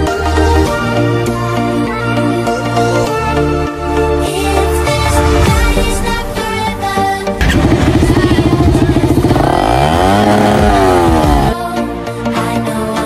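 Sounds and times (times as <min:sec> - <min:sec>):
motorcycle engine idling: 0:07.4 - 0:11.6
motorcycle engine revving: 0:07.4 - 0:11.6.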